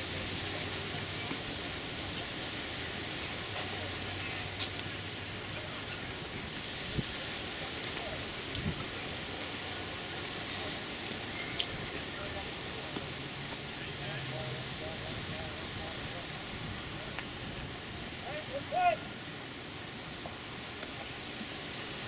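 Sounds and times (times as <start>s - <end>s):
outdoor background hiss: 0.0s - 22.0s
faint sharp clicks: 7.9s - 8.7s.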